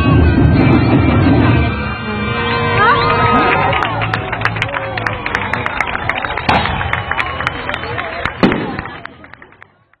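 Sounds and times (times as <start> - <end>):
crowd voices: 0.0 - 10.0
firecrackers popping: 3.6 - 10.0
loud bang: 6.4 - 7.0.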